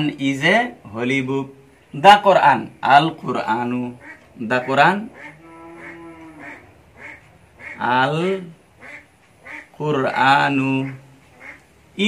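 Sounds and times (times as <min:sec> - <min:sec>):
cow mooing: 0:05.2 - 0:06.8.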